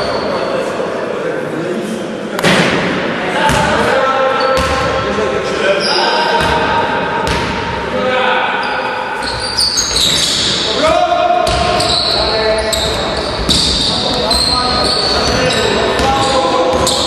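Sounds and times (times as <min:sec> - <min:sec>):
sneakers squeaking: 0:00.0 - 0:00.7, 0:03.4 - 0:07.7, 0:08.6 - 0:17.0
basketball bouncing on court: 0:04.6 - 0:04.9, 0:06.4 - 0:07.7, 0:11.4 - 0:12.1, 0:12.8 - 0:17.0
players calling out: 0:07.8 - 0:17.0.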